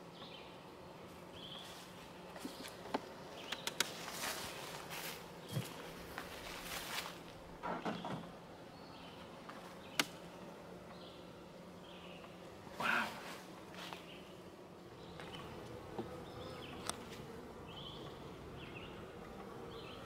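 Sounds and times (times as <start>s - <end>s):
honeybees humming: 0.0s - 20.0s.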